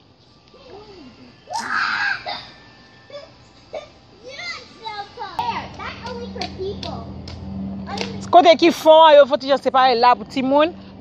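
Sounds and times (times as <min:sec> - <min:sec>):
children calling and chattering: 0:00.2 - 0:08.9
child crying out: 0:00.6 - 0:04.0.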